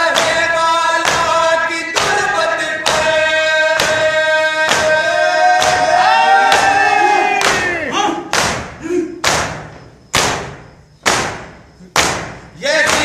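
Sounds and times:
group chanting: 0.0 - 9.6, 11.9 - 13.0
people slapping chests in unison: 0.0 - 13.0.

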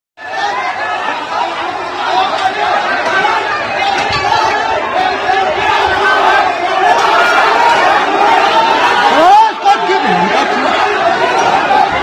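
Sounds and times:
crowd talking: 0.2 - 12.0.

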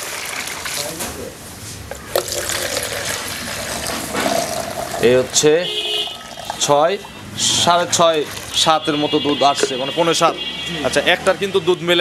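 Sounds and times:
milk pouring into a plastic mug: 2.0 - 5.3.

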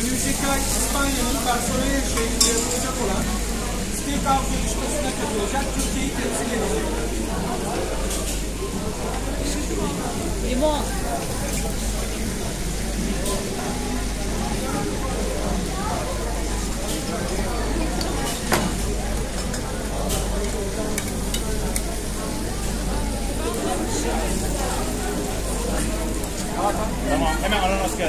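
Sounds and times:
steak sizzling on a hot plate: 0.0 - 7.2, 18.7 - 28.0
murmur of voices: 0.0 - 28.0.

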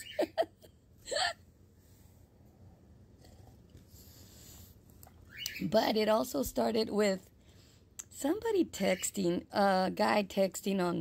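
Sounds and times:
woman laughing: 0.0 - 1.4.

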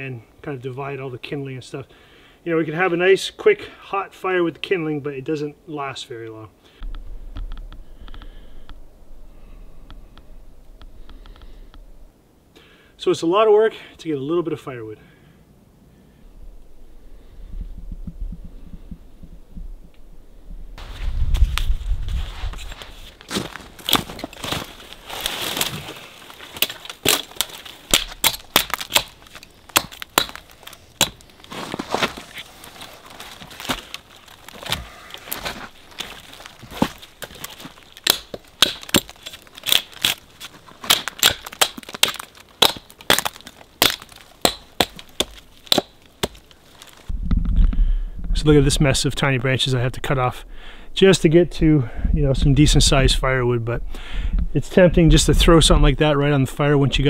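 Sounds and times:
twigs snapping and crackling: 9.8 - 11.9, 22.5 - 47.8
hatchet chopping branches: 23.8 - 32.4, 33.3 - 47.0.

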